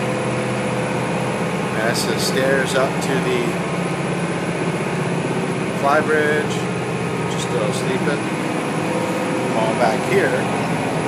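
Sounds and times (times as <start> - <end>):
boat engines droning: 0.0 - 11.0.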